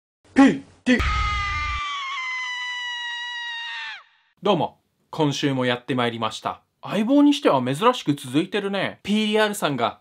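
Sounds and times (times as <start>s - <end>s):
long high-pitched scream: 1.0s - 4.3s.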